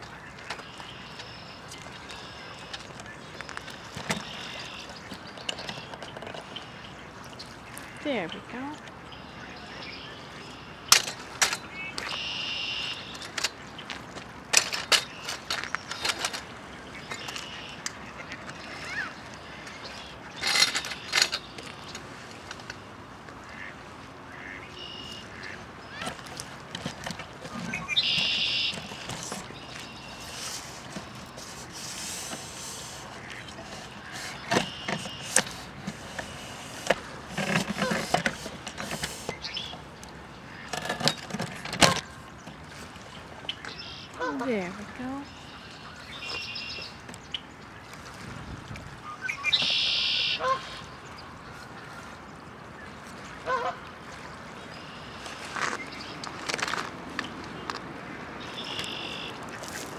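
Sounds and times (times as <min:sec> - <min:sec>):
ducks quacking: 0:23.4 - 0:26.2, 0:32.6 - 0:35.7, 0:49.4 - 0:50.9.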